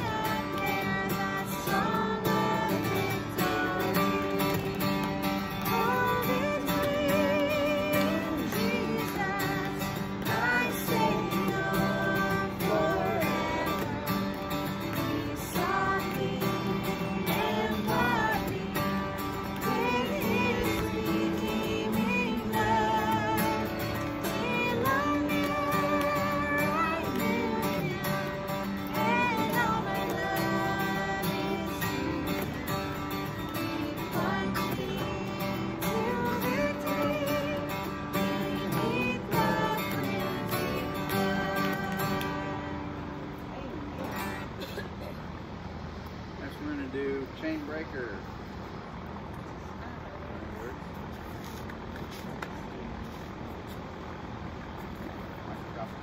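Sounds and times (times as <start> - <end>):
group singing: 0.0 - 43.1
strummed acoustic guitar: 0.0 - 46.6.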